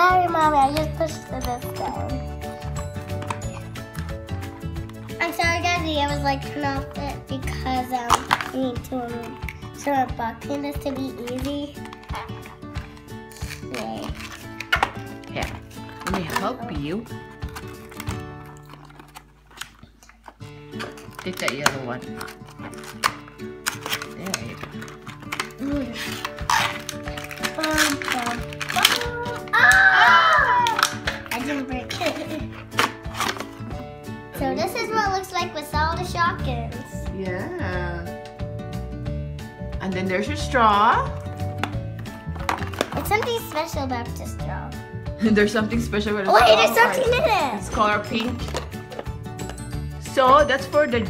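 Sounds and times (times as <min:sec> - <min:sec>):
packaging clicks: 0:10.8 - 0:16.5, 0:17.3 - 0:33.7, 0:41.6 - 0:43.7
background music with low beat: 0:30.6 - 0:51.0.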